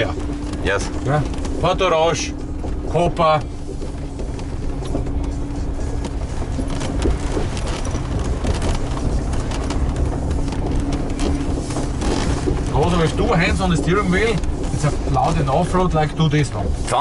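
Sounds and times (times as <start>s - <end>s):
constant hum: 0.0s - 17.0s
engine and drivetrain rumble: 0.0s - 17.0s.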